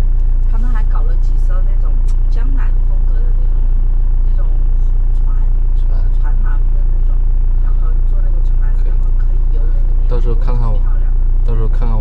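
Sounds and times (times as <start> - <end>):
engine idling low drone: 0.0 - 12.0.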